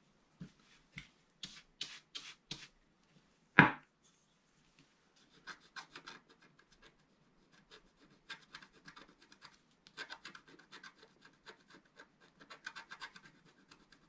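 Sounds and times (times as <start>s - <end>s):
stylus scratching coated sheet: 1.4s - 2.8s, 5.2s - 14.0s.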